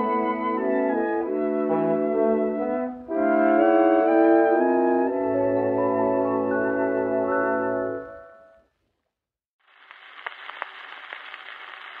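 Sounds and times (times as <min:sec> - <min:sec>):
record surface hiss: 0:09.6 - 0:12.0.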